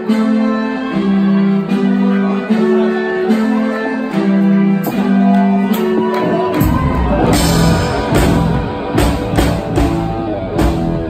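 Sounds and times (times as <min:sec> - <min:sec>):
electric guitar line: 0:00.0 - 0:11.0
bass guitar: 0:00.2 - 0:11.0
drum kit: 0:04.8 - 0:11.0.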